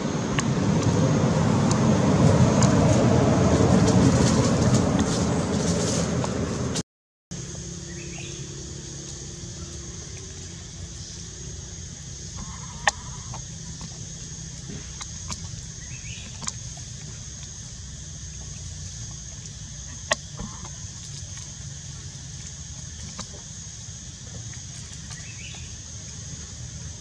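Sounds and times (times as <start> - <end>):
high insect drone: 7.3 - 27.0.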